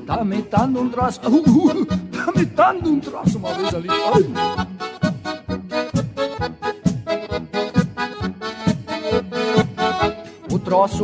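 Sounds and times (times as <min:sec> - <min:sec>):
accordion playing: 0:00.0 - 0:11.0
bass and drums beat: 0:00.0 - 0:11.0.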